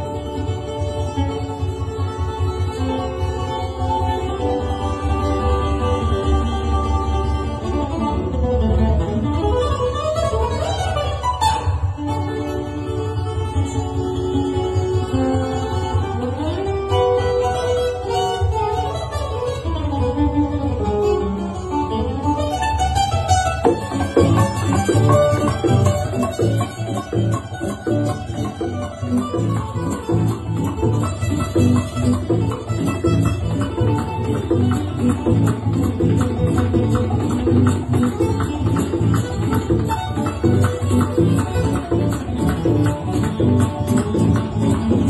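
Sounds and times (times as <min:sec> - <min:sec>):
guitar: 0:00.0 - 0:45.0
plucked string melody: 0:00.0 - 0:45.0
bongos: 0:22.2 - 0:45.0.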